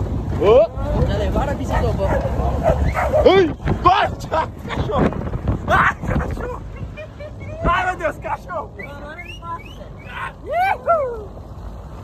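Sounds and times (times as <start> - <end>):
dog barking: 1.7 - 3.3.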